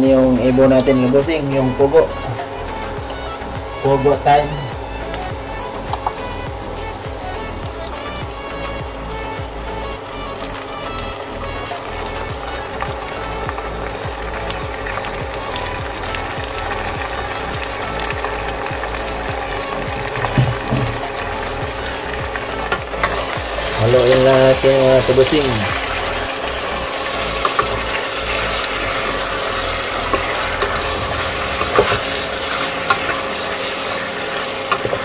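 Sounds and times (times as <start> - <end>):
meat sizzling in hot oil: 0.0 - 35.0.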